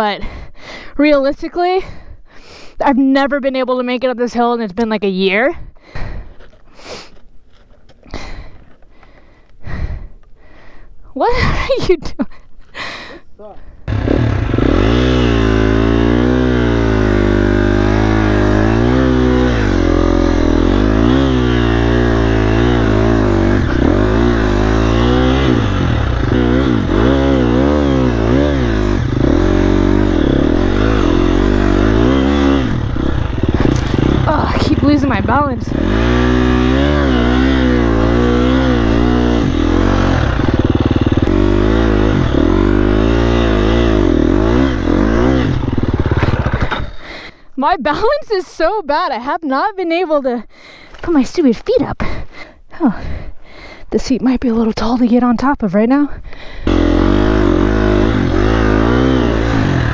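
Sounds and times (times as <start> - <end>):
dirt bike engine revving: 13.8 - 47.2, 56.6 - 59.9.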